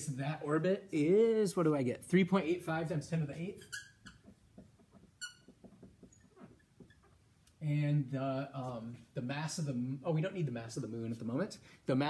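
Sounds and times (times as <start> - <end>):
marker squeaking on whiteboard: 3.2 - 7.4.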